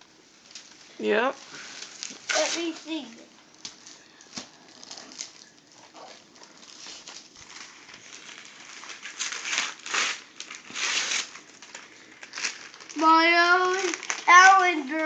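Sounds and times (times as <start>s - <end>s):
wrapping paper tearing and crinkling: 0.4s - 15.0s.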